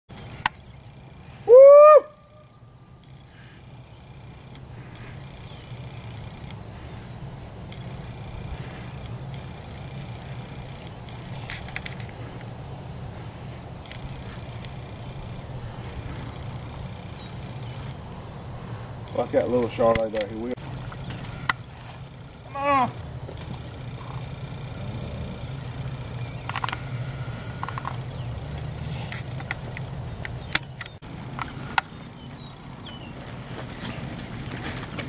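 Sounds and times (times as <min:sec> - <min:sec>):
low outdoor rumble: 0:00.1 - 0:35.0.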